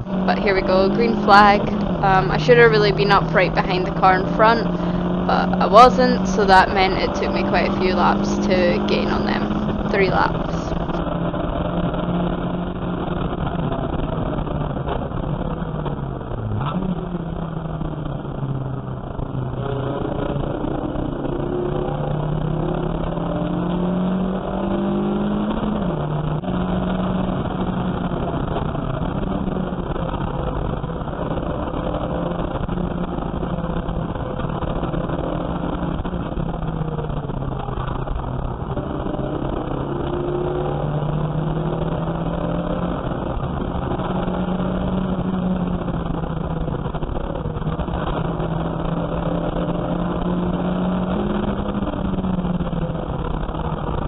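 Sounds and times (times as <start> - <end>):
race car engine revving: 0.0 - 54.0.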